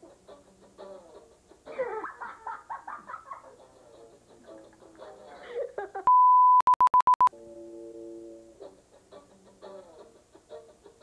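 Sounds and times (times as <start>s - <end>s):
electronic beeps: 6.1s - 7.3s.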